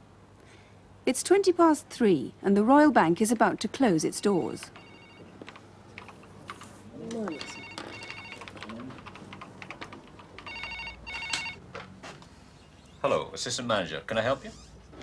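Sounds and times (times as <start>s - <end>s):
desk telephone ringing: 4.2s - 5.7s, 7.2s - 11.8s.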